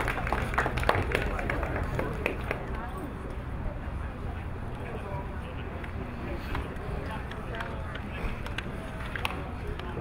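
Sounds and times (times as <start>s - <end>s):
distant indistinct voices: 0.0s - 10.0s.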